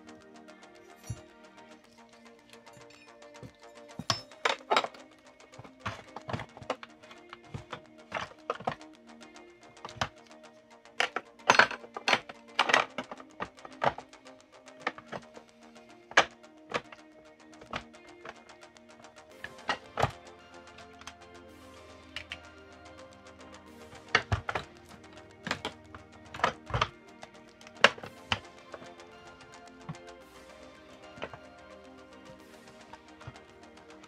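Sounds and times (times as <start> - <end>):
plastic parts clicking and knocking: 0.0 - 15.4, 16.0 - 18.7, 19.3 - 21.2, 22.1 - 34.0
background music: 0.0 - 34.0.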